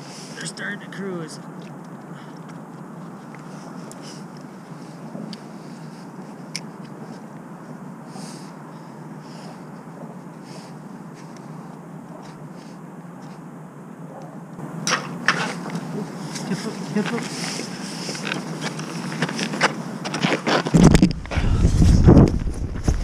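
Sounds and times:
low outdoor rumble: 0:00.4 - 0:23.0.

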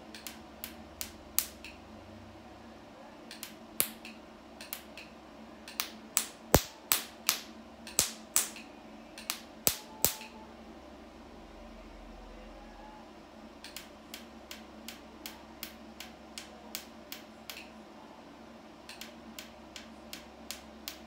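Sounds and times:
faint steady hum: 0:00.0 - 0:21.0
laser handpiece snapping: 0:00.1 - 0:01.8, 0:03.3 - 0:05.1, 0:05.7 - 0:10.3, 0:13.6 - 0:17.7, 0:18.9 - 0:21.0.

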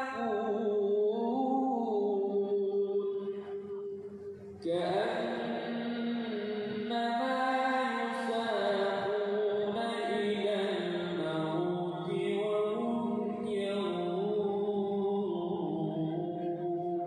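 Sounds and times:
man chanting recitation: 0:00.0 - 0:03.4, 0:04.6 - 0:17.0.

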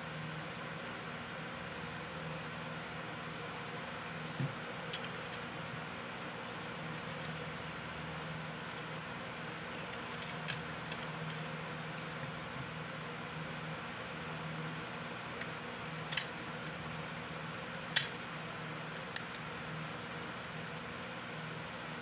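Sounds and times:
plastic clicks and rattles: 0:09.7 - 0:12.4, 0:15.3 - 0:16.3.

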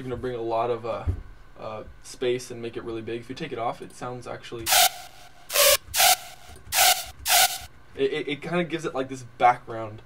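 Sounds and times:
hissy synth stabs: 0:04.7 - 0:07.7.

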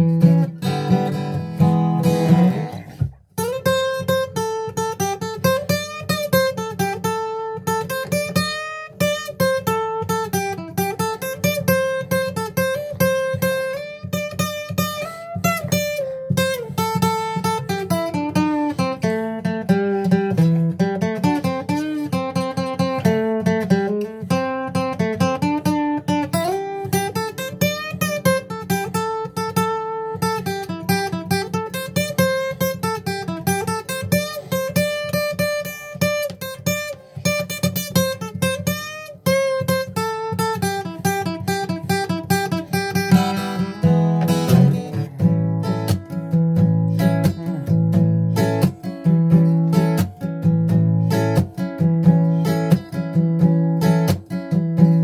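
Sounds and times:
acoustic guitar blues melody: 0:00.0 - 0:55.0.

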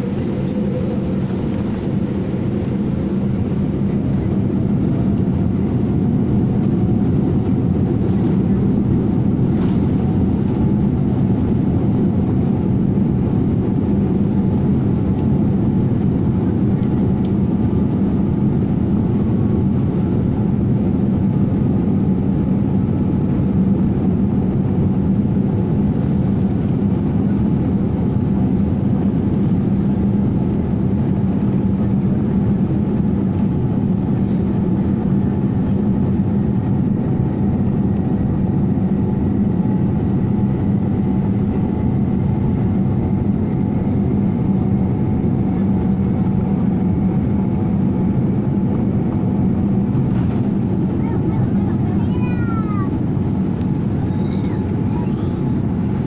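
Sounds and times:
jet engine whine rising: 0:00.0 - 0:56.0
jet engines rumbling: 0:00.0 - 0:56.0.

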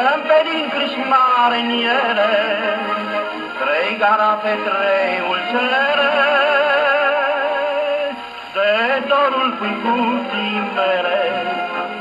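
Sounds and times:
man singing with vibrato: 0:00.0 - 0:12.0.

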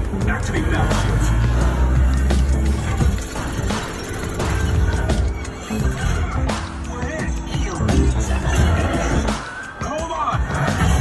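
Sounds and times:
music with sound effects: 0:00.0 - 0:11.0.

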